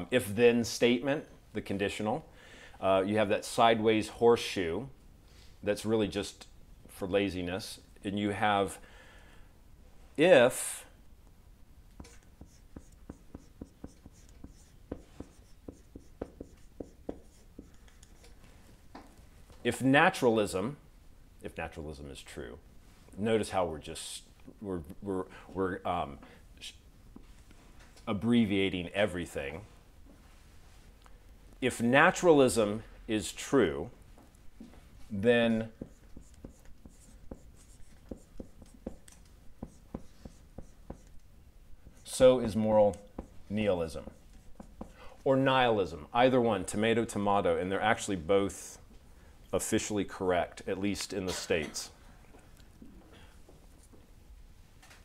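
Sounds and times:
marker writing on whiteboard: 12.0s - 18.4s, 35.5s - 45.0s.

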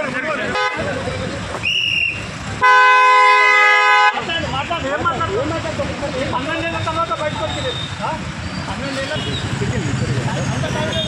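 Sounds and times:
people talking: 0.0s - 1.7s, 4.1s - 11.0s
vehicle horn blast: 0.5s - 0.8s, 2.6s - 4.2s.

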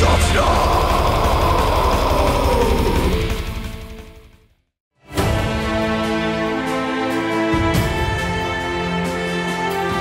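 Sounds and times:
harsh screamed vocal: 0.0s - 3.5s
rapid low drum beats: 0.0s - 4.3s.

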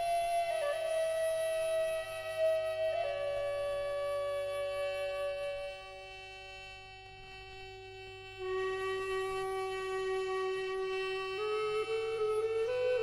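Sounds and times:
wind instrument sustained notes: 8.3s - 13.0s.

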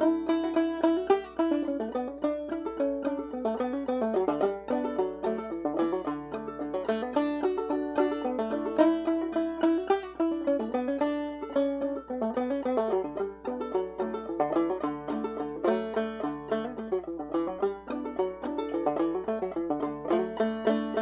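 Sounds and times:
banjo clawhammer playing: 0.0s - 21.0s.

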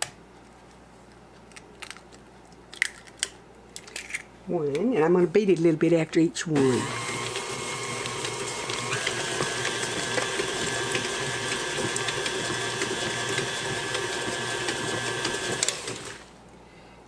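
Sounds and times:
stand mixer motor whine: 6.6s - 16.3s.

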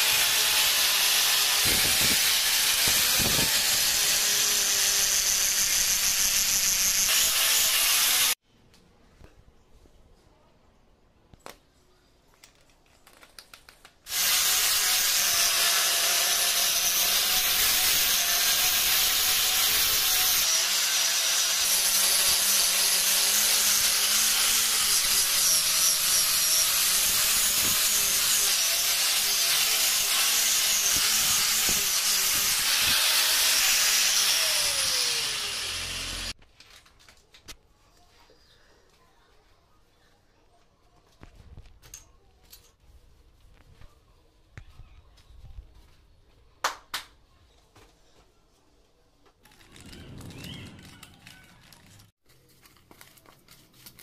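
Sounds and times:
angle grinder buffing metal: 0.0s - 8.4s, 14.1s - 36.4s.

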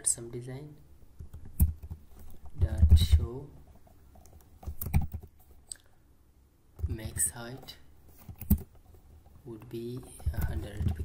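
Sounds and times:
computer keyboard keystrokes: 1.2s - 3.2s, 4.2s - 5.3s, 8.3s - 8.8s.

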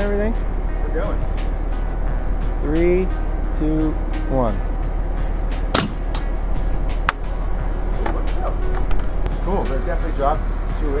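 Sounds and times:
background music: 0.0s - 11.0s
air rifle crack: 5.7s - 6.3s.

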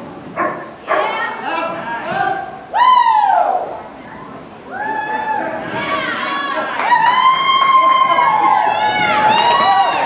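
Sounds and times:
people whooping and cheering: 2.6s - 3.8s, 4.7s - 10.0s.

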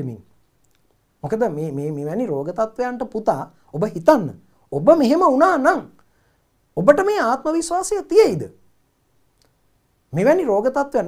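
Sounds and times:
man speaking: 0.0s - 0.3s, 1.2s - 6.0s, 6.8s - 8.6s, 10.1s - 11.0s.

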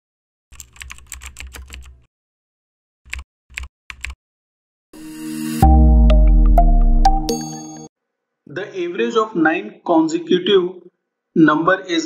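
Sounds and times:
computer keyboard typing: 0.5s - 2.0s, 3.1s - 4.2s.

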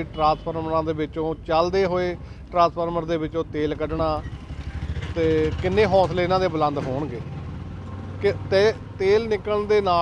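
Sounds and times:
man speaking: 8.2s - 10.0s.

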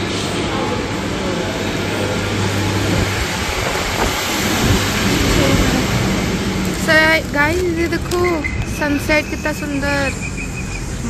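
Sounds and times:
outdoor rushing noise: 0.0s - 11.0s.

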